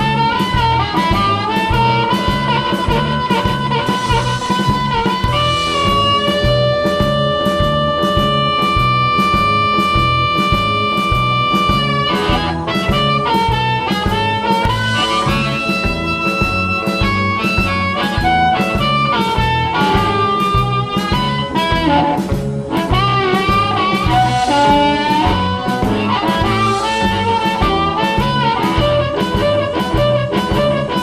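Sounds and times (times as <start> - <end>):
amplified harmonica: 0.0 - 31.0
bass and drum backing track: 0.0 - 31.0.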